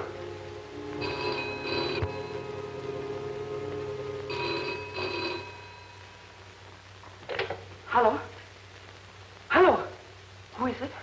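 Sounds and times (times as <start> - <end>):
background music: 0.0 - 7.0
telephone bell ringing: 1.0 - 2.8, 4.3 - 6.4.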